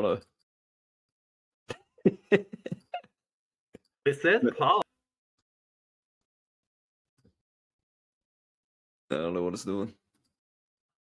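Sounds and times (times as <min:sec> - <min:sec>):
man laughing: 0:01.7 - 0:03.2.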